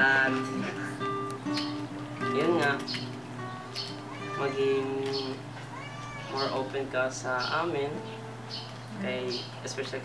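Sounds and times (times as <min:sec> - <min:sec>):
background music with held notes: 0:00.0 - 0:09.6
meow-like cries: 0:03.8 - 0:06.9.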